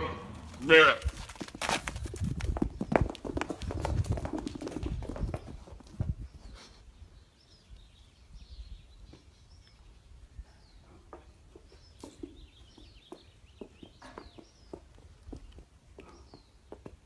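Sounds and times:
hooves clip-clopping on hard ground: 0:00.2 - 0:06.6, 0:11.1 - 0:17.0.

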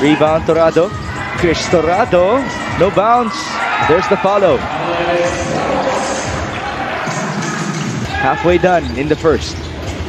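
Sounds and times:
crowd murmur: 0:00.0 - 0:09.2.

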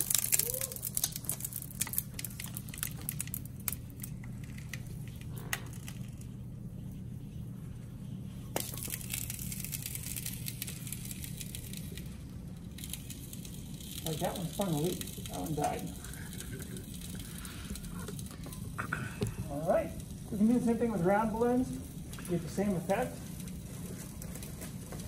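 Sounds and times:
balloons crinkling and crackling: 0:00.0 - 0:06.9, 0:08.4 - 0:25.0
low hum: 0:00.0 - 0:25.0.

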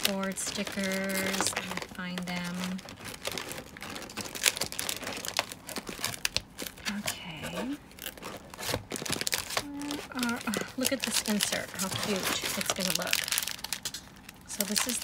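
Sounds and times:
papers and plastic packs rustling: 0:00.0 - 0:15.0
person humming: 0:09.6 - 0:10.7
person murmuring: 0:09.6 - 0:10.8.

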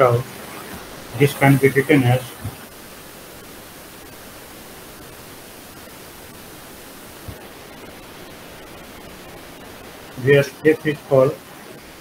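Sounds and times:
person speaking: 0:00.0 - 0:00.3, 0:01.1 - 0:02.6, 0:10.2 - 0:11.4
microphone hiss: 0:00.0 - 0:12.0.

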